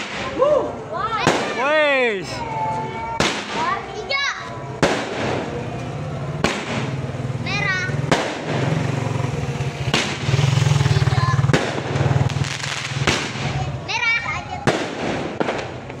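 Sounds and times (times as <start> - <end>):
fireworks bangs: 0.0 - 0.5, 1.1 - 16.0.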